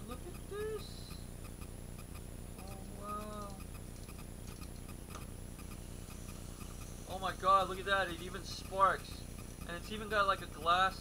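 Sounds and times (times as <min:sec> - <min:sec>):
person humming: 0:00.0 - 0:01.2, 0:02.6 - 0:03.6
steady low hum: 0:00.0 - 0:11.0
clockwork clicking: 0:00.1 - 0:11.0.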